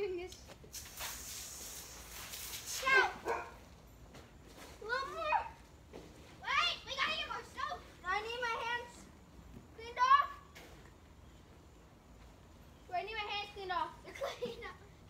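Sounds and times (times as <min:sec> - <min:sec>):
water spraying from hose: 0:00.6 - 0:03.3
children calling and shouting: 0:02.7 - 0:03.6, 0:04.8 - 0:05.7, 0:06.4 - 0:10.8.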